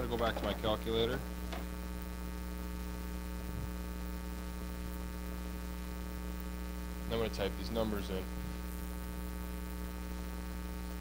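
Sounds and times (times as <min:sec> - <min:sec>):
steady electrical hum: 0:00.0 - 0:11.0.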